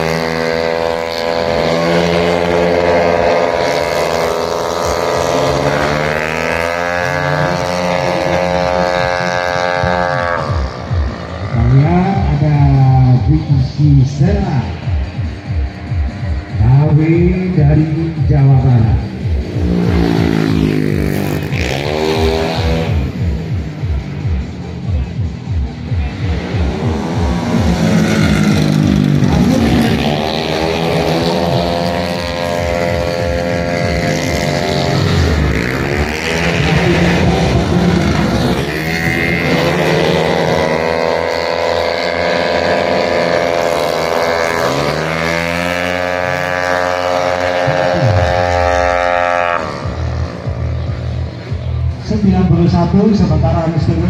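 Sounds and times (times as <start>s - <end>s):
racing scooter engines whining: 0.0s - 54.0s.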